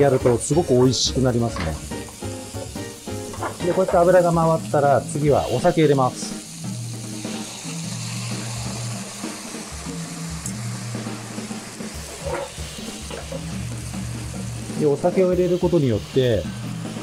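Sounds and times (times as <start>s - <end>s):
background music low notes: 0.0s - 17.0s
vegetables sizzling in a pan: 0.0s - 17.0s
liquid pouring: 5.6s - 13.3s.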